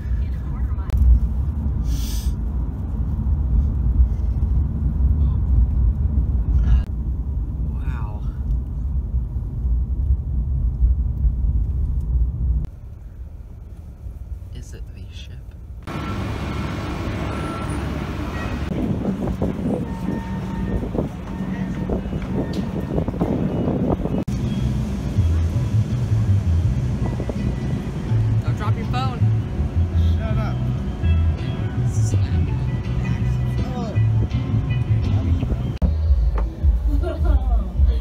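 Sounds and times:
car road rumble: 0:00.0 - 0:38.0.

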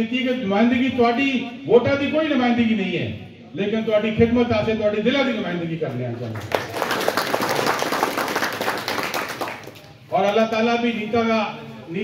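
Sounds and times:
crowd clapping: 0:06.2 - 0:10.6.

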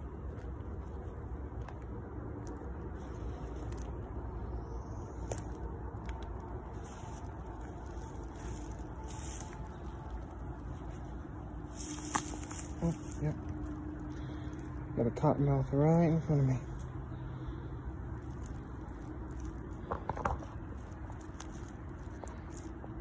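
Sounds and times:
low outdoor rumble: 0:00.0 - 0:23.0.

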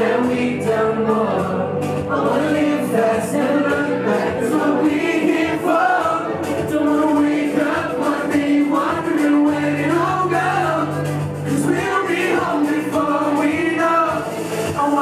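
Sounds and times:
low instrumental backing: 0:00.0 - 0:15.0
men singing into microphones: 0:00.0 - 0:15.0.

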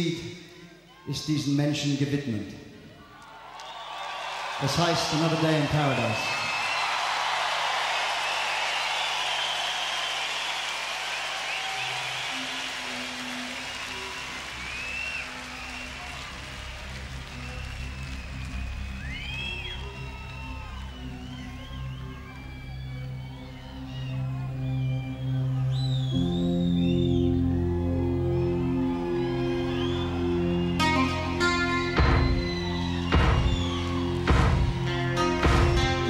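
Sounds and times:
crowd cheering and clapping: 0:03.0 - 0:36.0.

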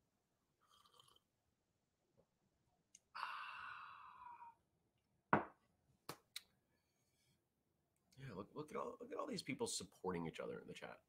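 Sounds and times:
man sighing: 0:03.1 - 0:04.6.

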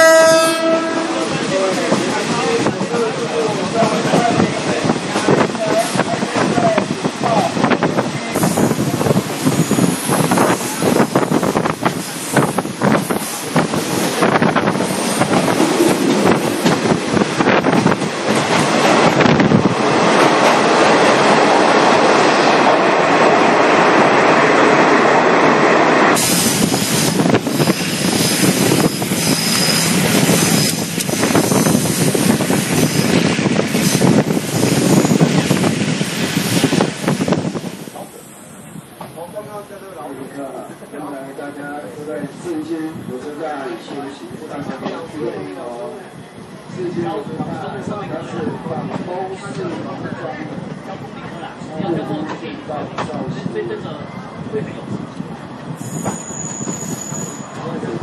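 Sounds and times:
train roar in tunnel: 0:00.0 - 0:58.0
train wheels clattering on rails: 0:01.3 - 0:38.2, 0:55.6 - 0:58.0.

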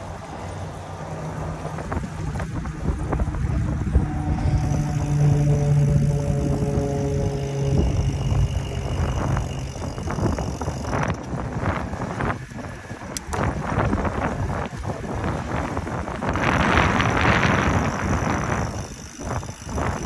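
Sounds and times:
low hum with overtones: 0:00.0 - 0:20.0
wind buffeting microphone: 0:01.3 - 0:20.0
sharp clicks and rattles: 0:04.2 - 0:11.4, 0:16.3 - 0:20.0.

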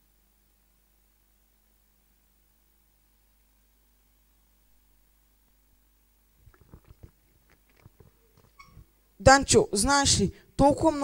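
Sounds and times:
faint handling knocks and bumps: 0:06.4 - 0:08.9.

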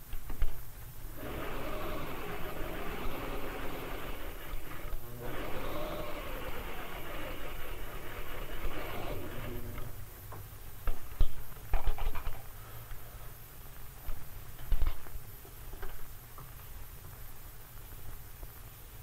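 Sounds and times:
sewing machine running: 0:01.1 - 0:10.0.

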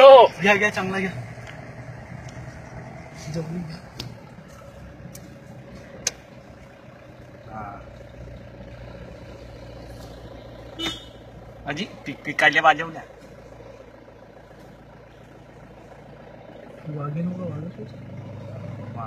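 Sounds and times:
engine running at low revs: 0:00.0 - 0:19.0.

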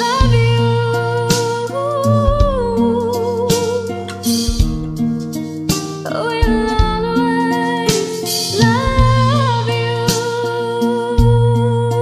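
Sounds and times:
bass and accompaniment: 0:00.0 - 0:12.0.

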